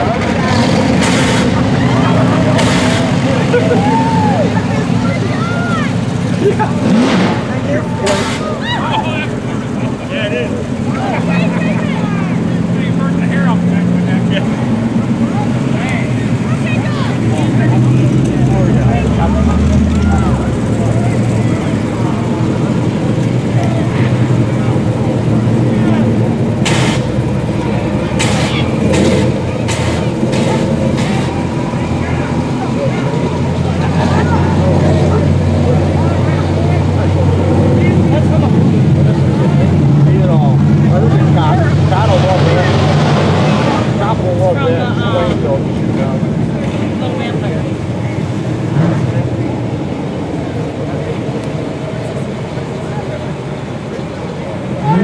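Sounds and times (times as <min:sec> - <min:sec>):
truck engine running: 0:00.0 - 0:55.0.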